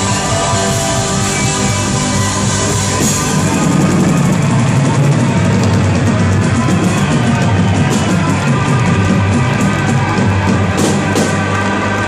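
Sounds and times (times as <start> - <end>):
drum kit: 0.0 - 12.0
live rock band playing: 0.0 - 12.0.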